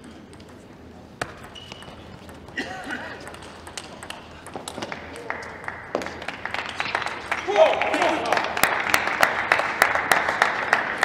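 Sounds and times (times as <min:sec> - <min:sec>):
table tennis ball taps: 0:00.3 - 0:02.6, 0:03.2 - 0:06.2.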